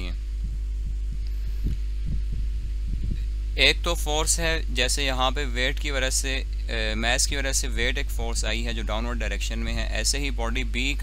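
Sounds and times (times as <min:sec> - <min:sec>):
soft low thumps: 0:00.0 - 0:04.8
electrical mains hum: 0:00.0 - 0:11.0.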